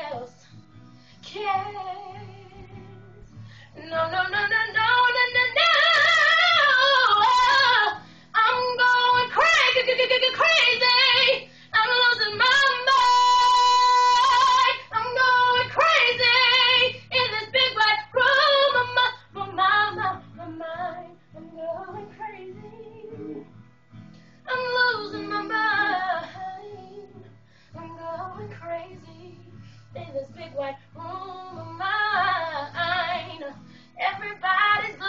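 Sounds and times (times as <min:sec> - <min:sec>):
woman singing with vibrato: 0:03.8 - 0:23.4, 0:24.5 - 0:27.2, 0:27.8 - 0:35.0.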